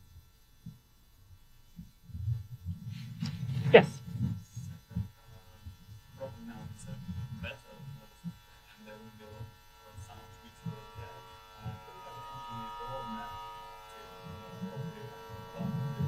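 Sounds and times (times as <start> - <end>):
steady buzz: 0.0 - 16.0.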